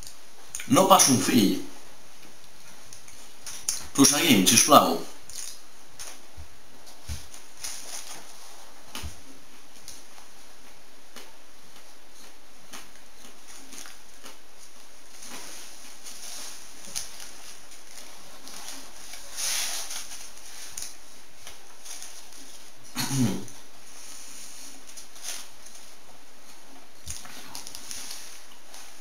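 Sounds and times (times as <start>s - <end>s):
steady hiss: 0.0s - 29.0s.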